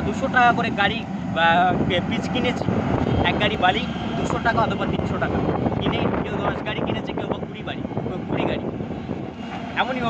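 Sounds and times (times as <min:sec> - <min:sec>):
excavator diesel engine droning: 0:00.0 - 0:10.0.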